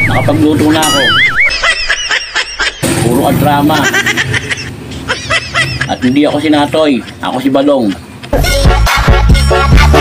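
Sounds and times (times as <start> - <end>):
warbling whistle tone: 0.0 - 1.6.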